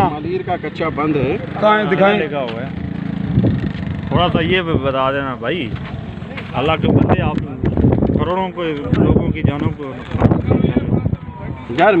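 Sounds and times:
men arguing: 0:00.0 - 0:03.2, 0:03.9 - 0:12.0.

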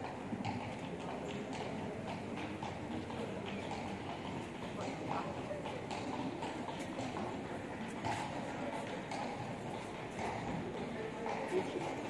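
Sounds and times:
murmur of people talking: 0:00.0 - 0:12.0
footsteps on stone paving: 0:06.4 - 0:12.0.

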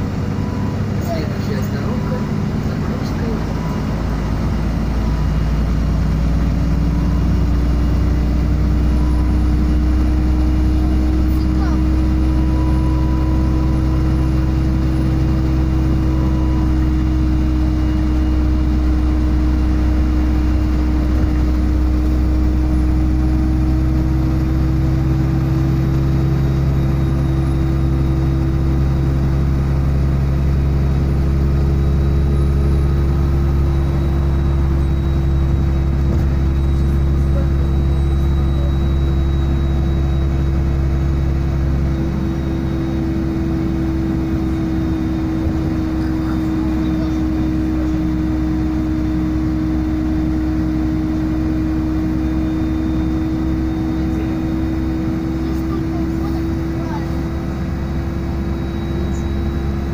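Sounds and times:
bus engine rumble: 0:00.0 - 0:59.9
drivetrain whine: 0:00.0 - 0:59.9.

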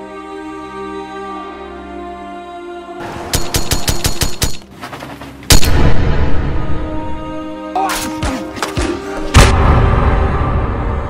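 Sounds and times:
background music: 0:00.0 - 0:11.0
automatic gunfire: 0:03.4 - 0:04.6
loud boom: 0:09.4 - 0:11.0.

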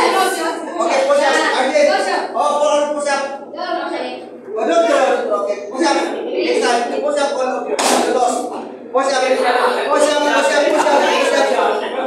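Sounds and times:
sharp slap: 0:07.7 - 0:08.4.

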